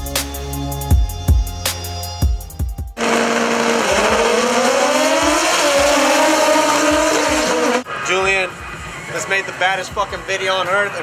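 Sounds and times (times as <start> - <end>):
music with drums: 0.0 - 3.0
racing engine revving high: 3.0 - 7.9.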